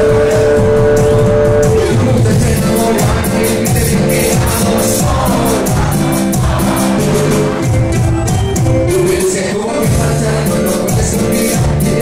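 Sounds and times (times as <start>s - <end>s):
latin band music: 0.0s - 12.0s.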